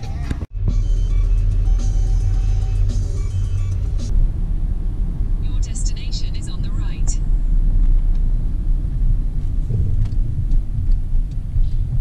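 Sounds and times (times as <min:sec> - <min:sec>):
car cabin engine and road rumble: 0:00.0 - 0:12.0.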